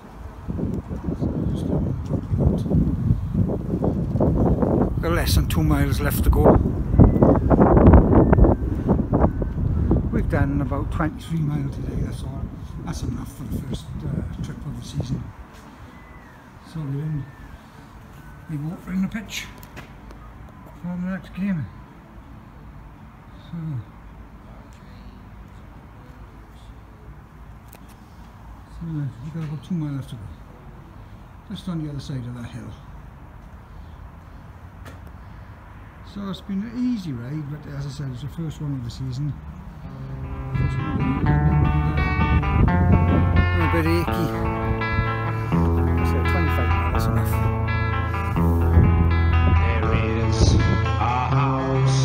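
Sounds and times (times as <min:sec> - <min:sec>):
wind buffeting microphone: 0:00.0 - 0:15.4, 0:39.9 - 0:51.4
low outdoor rumble: 0:39.8 - 0:52.0.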